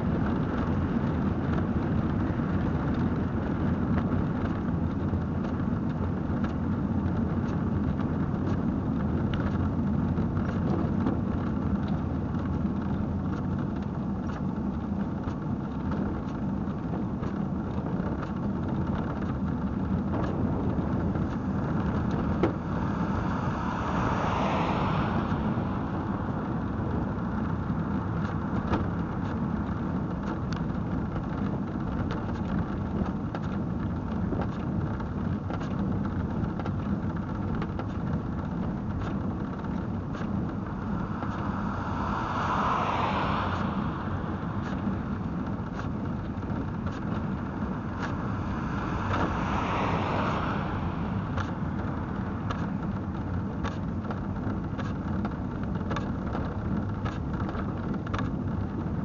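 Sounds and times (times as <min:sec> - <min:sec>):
tyre and wind rumble: 0:00.0 - 0:59.0.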